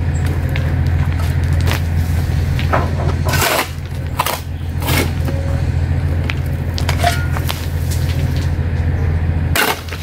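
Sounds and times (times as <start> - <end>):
steady low rumble: 0.0 - 10.0
shovel scraping stony dirt: 3.1 - 5.4, 9.6 - 10.0.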